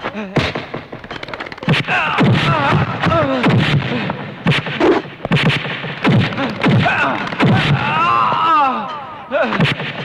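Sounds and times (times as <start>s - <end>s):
punch impacts: 1.7s - 8.0s
man crying out in pain: 6.4s - 9.6s.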